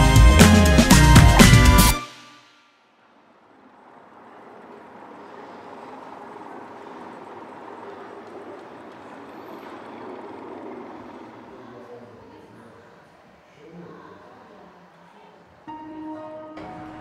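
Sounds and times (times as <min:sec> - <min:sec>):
dense background murmur: 0:03.4 - 0:15.7.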